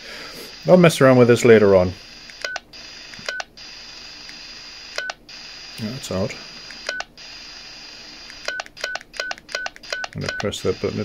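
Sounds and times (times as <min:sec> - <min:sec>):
radio receiver static hiss: 0:00.0 - 0:11.0
short keypad beep: 0:08.5 - 0:10.6.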